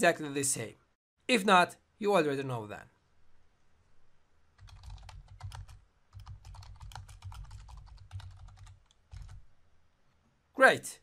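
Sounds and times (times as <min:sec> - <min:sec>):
computer keyboard typing: 0:04.6 - 0:09.4.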